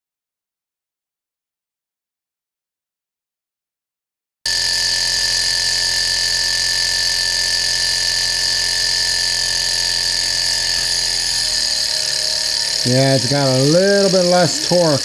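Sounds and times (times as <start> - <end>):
model engine whirring: 4.5 - 15.0.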